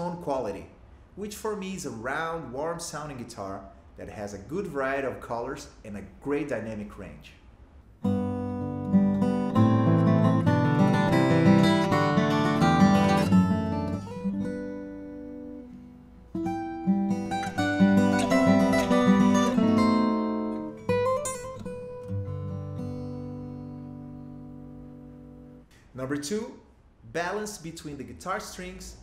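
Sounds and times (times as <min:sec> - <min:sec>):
fingerstyle acoustic guitar: 0:08.0 - 0:25.7.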